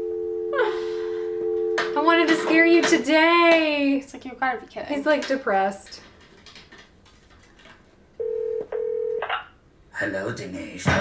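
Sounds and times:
telephone ringing tone beeps: 0:08.2 - 0:09.2.

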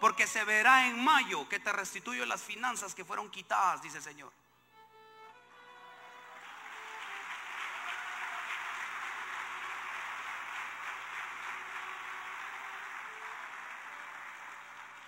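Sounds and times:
congregation applauding: 0:05.8 - 0:15.0.

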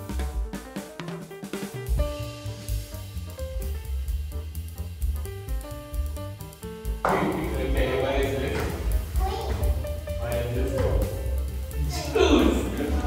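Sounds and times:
background music with beat: 0:00.0 - 0:13.0
young children chattering: 0:07.9 - 0:13.0.

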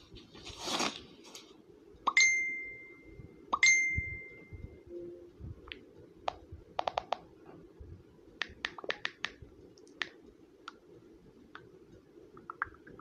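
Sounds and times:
bright bell dings: 0:02.2 - 0:04.6.

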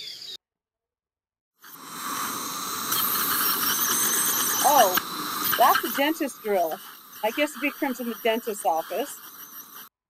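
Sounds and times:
dentist's drill whining: 0:01.6 - 0:10.0.

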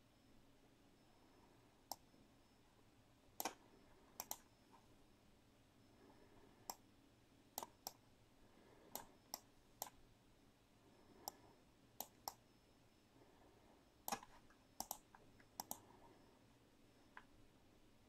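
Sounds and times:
mouse and keyboard clicks: 0:03.4 - 0:03.6, 0:04.2 - 0:04.5, 0:14.0 - 0:15.9.

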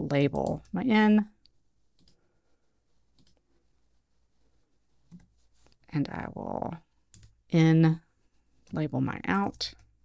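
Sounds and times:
computer mouse clicks: 0:01.4 - 0:02.2, 0:03.1 - 0:03.4.

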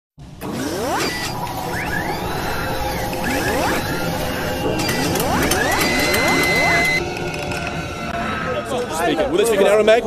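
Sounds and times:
mechanical clicks: 0:00.4 - 0:07.8
rising whooshes: 0:00.4 - 0:08.6.

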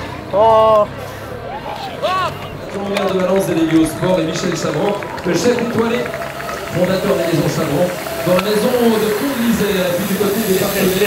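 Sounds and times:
men talking: 0:01.8 - 0:11.0.

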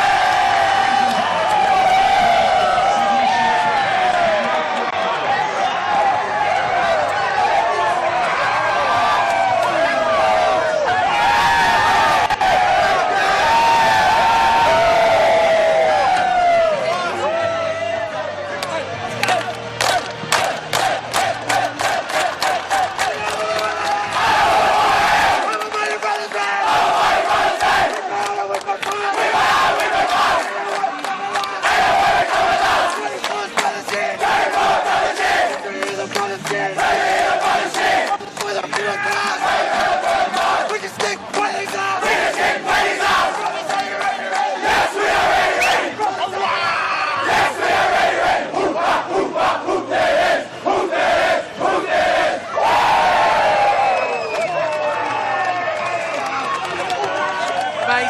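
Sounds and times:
shouts and whoops: 0:00.0 - 0:18.1, 0:45.5 - 0:47.5, 0:52.5 - 0:58.0
group chanting and singing: 0:19.9 - 0:23.2, 0:24.2 - 0:46.5, 0:47.2 - 0:52.5.

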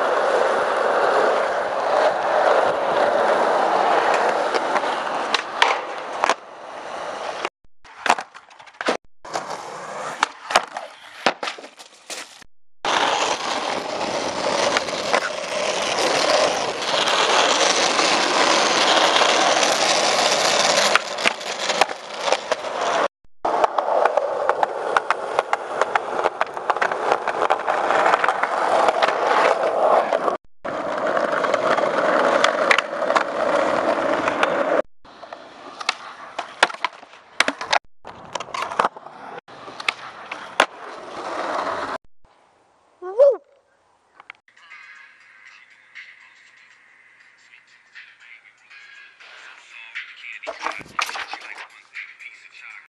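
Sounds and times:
skateboard wheels rolling on asphalt: 0:00.0 - 0:42.0, 0:44.3 - 0:52.8
skateboard tail clacks: 0:04.0 - 0:06.4, 0:07.9 - 0:09.5, 0:12.9 - 0:39.0.

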